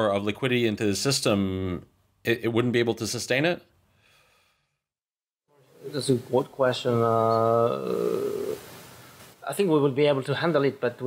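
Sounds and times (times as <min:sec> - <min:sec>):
man talking: 0:00.0 - 0:03.7, 0:05.7 - 0:08.6, 0:09.4 - 0:11.0.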